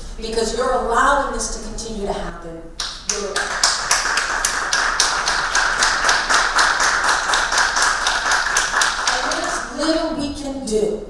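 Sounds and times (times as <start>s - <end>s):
audience applauding: 3.1s - 9.7s.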